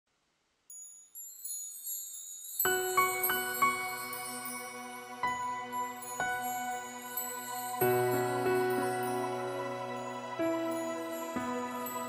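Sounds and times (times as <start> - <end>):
high tinkling chimes: 0.7 - 12.0.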